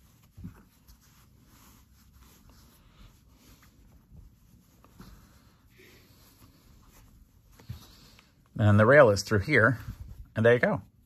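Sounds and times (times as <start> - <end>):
towel fabric rustling: 0.0 - 11.0.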